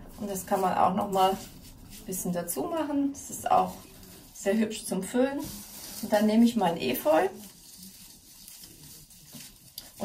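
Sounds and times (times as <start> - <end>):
rustling of leaves and stems: 0.0 - 10.0.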